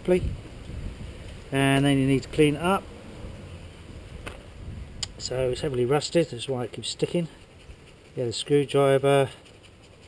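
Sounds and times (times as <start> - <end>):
wind rumble on microphone: 0.0 - 5.9.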